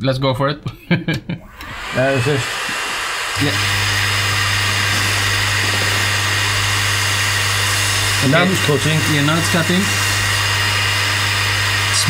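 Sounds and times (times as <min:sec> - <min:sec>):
cooling fan whir: 0:01.5 - 0:12.0.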